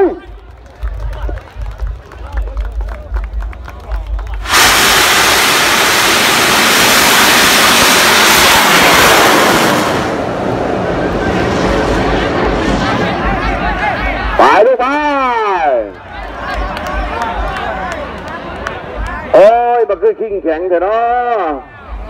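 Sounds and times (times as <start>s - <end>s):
rocket motor roaring: 4.4s - 14.4s.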